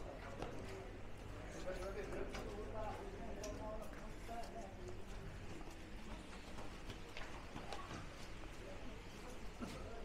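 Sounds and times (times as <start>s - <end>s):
faint indistinct voices: 0.0s - 10.0s
footsteps on stone tiles: 0.3s - 10.0s.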